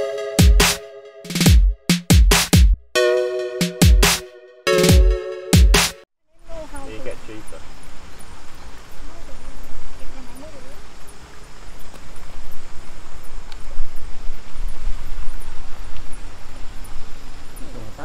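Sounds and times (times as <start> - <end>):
wind buffeting microphone: 8.0 - 18.0.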